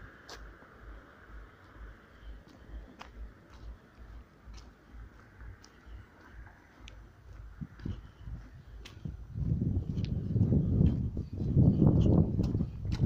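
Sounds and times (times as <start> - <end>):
rumbling and rustling on microphone: 0.0 - 13.0.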